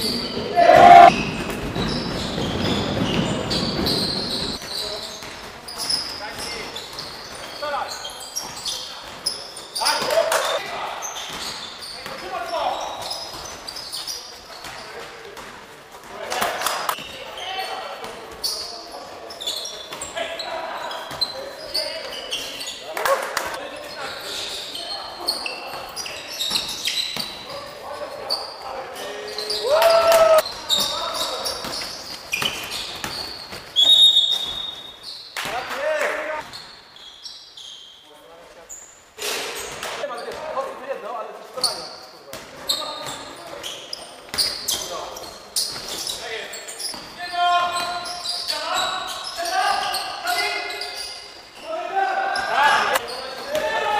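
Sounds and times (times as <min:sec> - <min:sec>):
shoe squeaks: 0:00.0 - 0:15.5, 0:16.9 - 0:35.6, 0:36.2 - 0:40.8, 0:41.4 - 0:53.9
players shouting: 0:00.4 - 0:01.1, 0:29.5 - 0:30.4.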